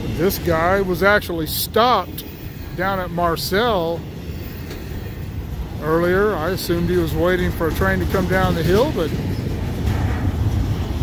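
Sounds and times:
freight train rumbling past: 0.0 - 11.0.

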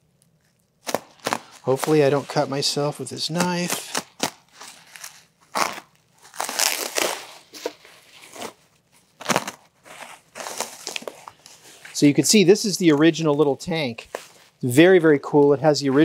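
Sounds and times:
bubble wrap and plastic bag crinkling: 0.1 - 14.7.

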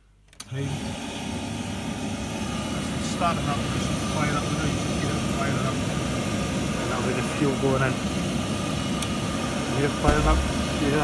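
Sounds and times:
oil boiler burner running: 0.4 - 11.0.

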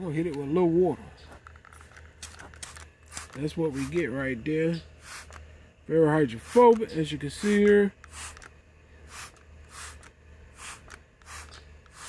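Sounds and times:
low steady hum: 0.0 - 12.0
water spray hissing: 2.6 - 4.1, 5.0 - 5.4, 6.3 - 8.5, 9.1 - 12.0.

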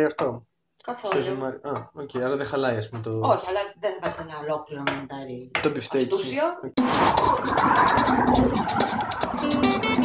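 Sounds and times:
road traffic: 6.8 - 10.0.

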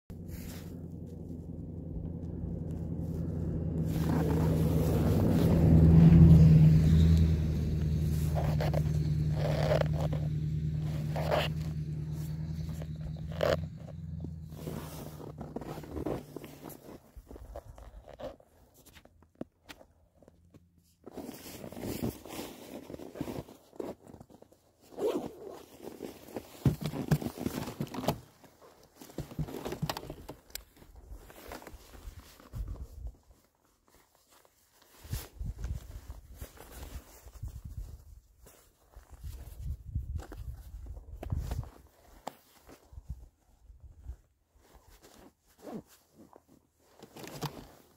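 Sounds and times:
low steady hum: 0.1 - 16.5
riding suit rustling: 0.1 - 19.0, 21.0 - 26.7, 30.8 - 47.9
footsteps crunching in snow: 0.2 - 18.2.

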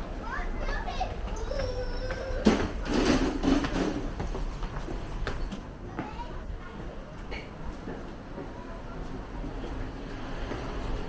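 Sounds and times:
children calling out: 0.2 - 2.9.

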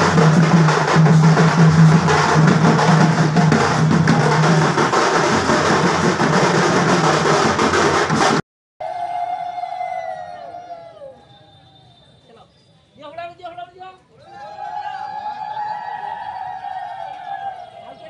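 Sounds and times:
dense hand drumming: 0.0 - 8.4.

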